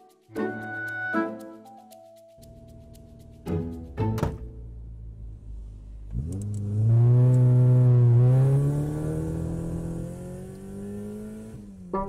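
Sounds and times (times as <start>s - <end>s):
car engine revving and accelerating: 4.8s - 12.0s.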